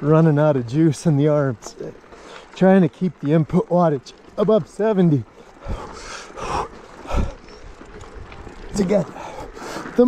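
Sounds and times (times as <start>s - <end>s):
man panting: 5.4s - 7.6s, 9.1s - 10.0s.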